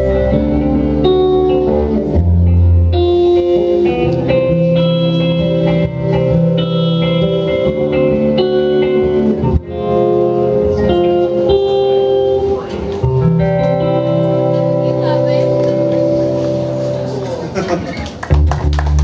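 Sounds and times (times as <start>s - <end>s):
drums: 0.0s - 17.3s
electric guitars: 0.0s - 19.0s.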